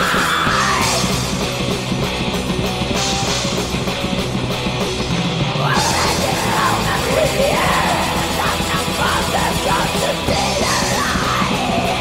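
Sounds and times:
metal song with harsh vocals: 0.0 - 12.0.

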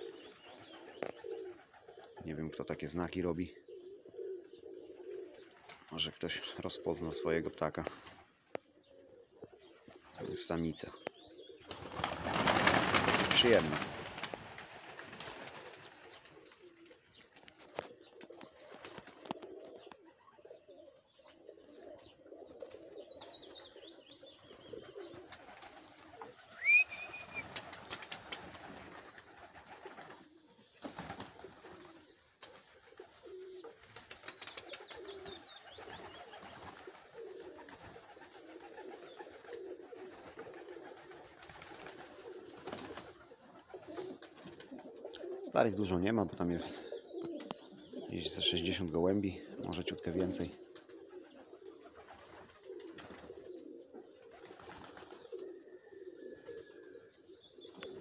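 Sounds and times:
pigeons cooing: 0.0 - 58.0
faint high twittering: 21.9 - 36.9.

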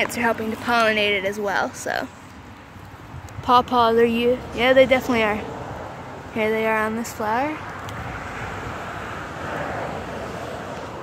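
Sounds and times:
distant traffic rumble: 0.0 - 11.0.

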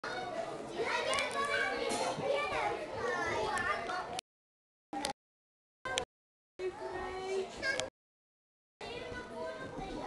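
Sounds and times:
children playing and shouting: 0.0 - 4.2, 5.9 - 7.9, 8.8 - 10.0.

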